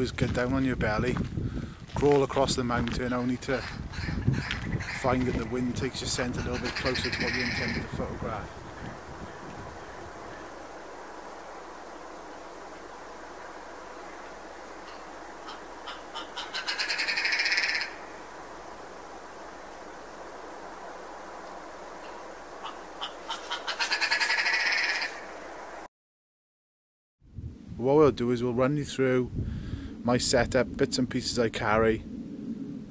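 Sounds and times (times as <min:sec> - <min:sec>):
grouse calling: 0:03.1 - 0:10.7, 0:12.7 - 0:18.2, 0:21.9 - 0:25.4
background hiss: 0:08.1 - 0:23.8.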